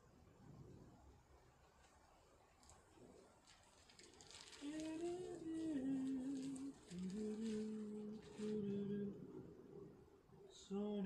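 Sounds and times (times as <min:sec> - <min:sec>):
person humming a slow tune: 0:04.6 - 0:09.4.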